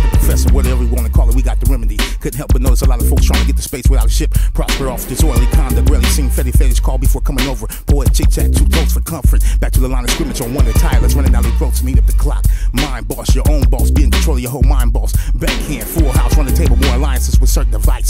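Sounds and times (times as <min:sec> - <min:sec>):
heavy bass beat: 0:00.0 - 0:18.0
rapping over a beat: 0:00.0 - 0:18.0.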